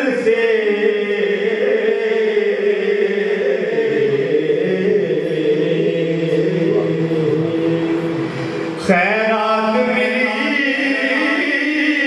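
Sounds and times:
man singing into microphone: 0.0 - 12.0.

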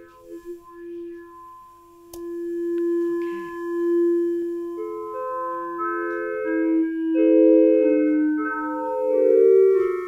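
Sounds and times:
electronic keyboard steady note: 0.0 - 10.0.

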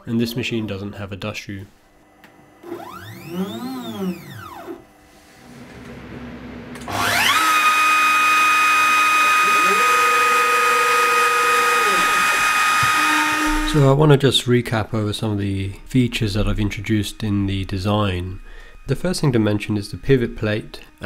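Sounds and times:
stepper motors whining: 2.6 - 4.9, 5.6 - 14.0, 16.0 - 21.0
router spindle high whine: 2.6 - 5.0, 6.7 - 14.0, 16.0 - 21.0
low motor tone: 2.6 - 7.4, 8.9 - 21.0.

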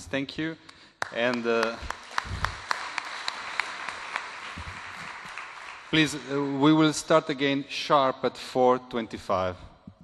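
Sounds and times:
audience applauding: 1.0 - 7.0.

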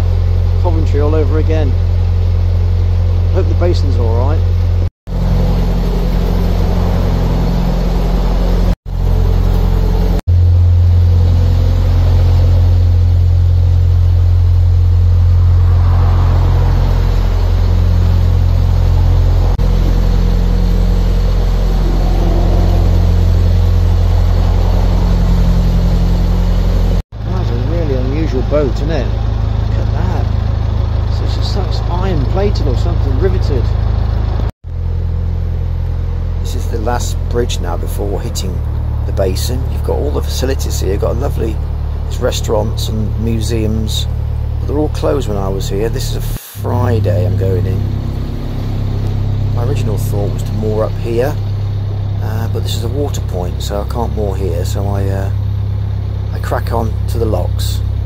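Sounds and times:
boat engine droning: 0.0 - 58.0.

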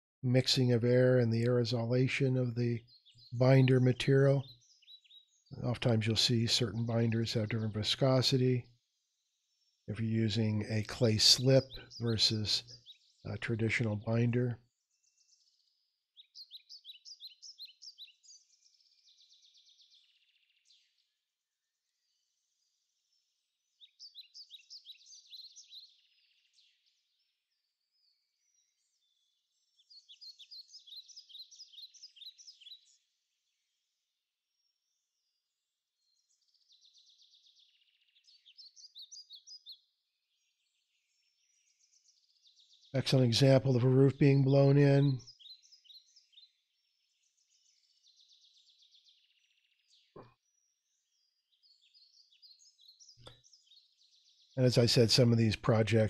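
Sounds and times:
faint songbird chirping: 0.2 - 56.0.

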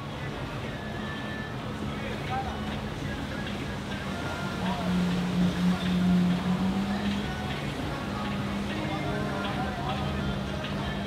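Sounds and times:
motorboat engine drone: 0.0 - 11.0
water rushing from wake: 0.0 - 11.0.

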